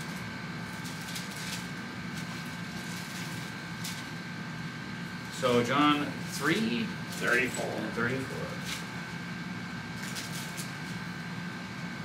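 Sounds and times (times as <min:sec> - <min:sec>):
ventilation hum with high tone: 0:00.0 - 0:12.0
pages rustling: 0:10.0 - 0:11.0.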